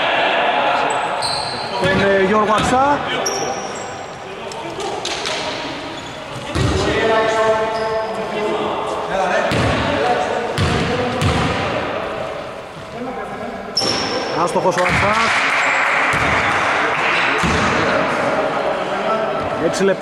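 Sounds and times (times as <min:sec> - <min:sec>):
voices calling out in echoing hall: 0:00.0 - 0:20.0.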